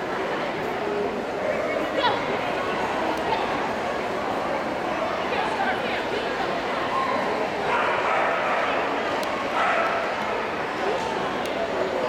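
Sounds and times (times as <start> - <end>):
voices in a large hall: 0.0 - 12.0.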